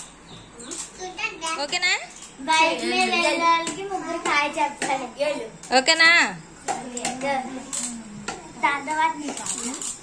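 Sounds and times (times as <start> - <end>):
children talking and calling out: 0.6 - 1.7, 2.4 - 5.7, 6.7 - 10.0.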